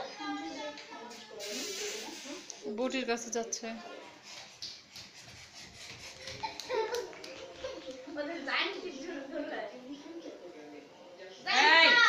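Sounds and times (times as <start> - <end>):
children running on tiled floor: 4.5 - 8.1.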